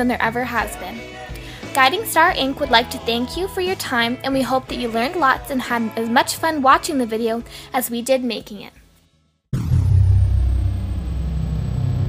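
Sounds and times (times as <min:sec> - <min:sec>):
deep steady rumble: 0:09.6 - 0:12.0.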